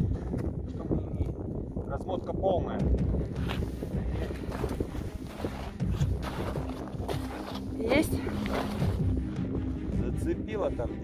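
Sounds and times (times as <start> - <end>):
wind buffeting microphone: 0.0 - 10.4
steady low rumble: 0.0 - 11.0.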